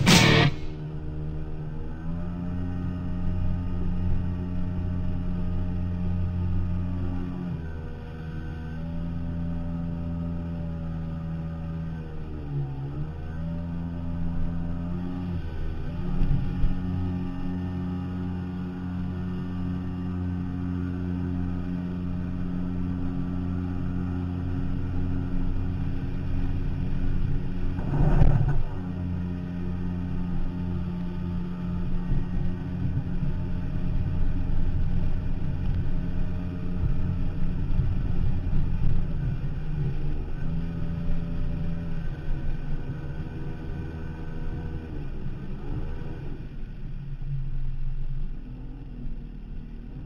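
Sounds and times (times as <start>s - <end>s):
loud thump: 0.0s - 0.7s
boat engine running: 0.0s - 50.0s.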